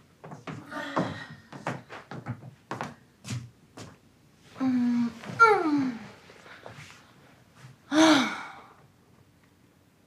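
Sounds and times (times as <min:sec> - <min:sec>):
woman sighing: 0:07.9 - 0:08.8.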